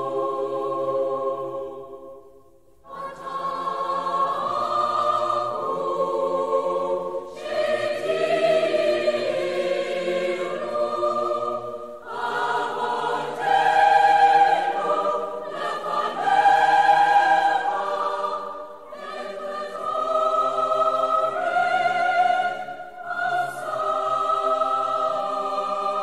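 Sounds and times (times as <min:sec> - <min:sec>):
choir singing sustained chords: 0:00.0 - 0:26.0.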